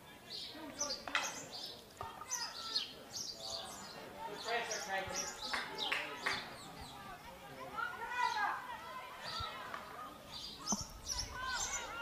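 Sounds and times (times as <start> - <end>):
birds chirping: 0.1 - 12.0
distant voices: 0.5 - 12.0.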